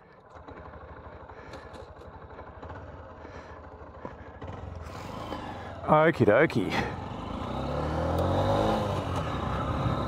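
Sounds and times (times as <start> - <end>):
motorcycle engine accelerating: 0.2 - 10.0.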